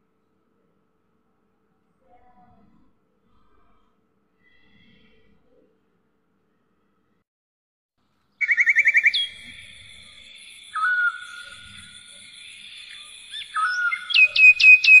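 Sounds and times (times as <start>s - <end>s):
bird-like chirping and whistling: 8.4s - 15.0s.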